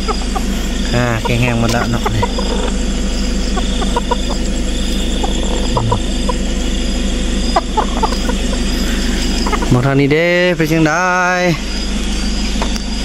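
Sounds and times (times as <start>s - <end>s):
chickens clucking: 0.0s - 11.3s
steady low hum: 0.0s - 13.0s.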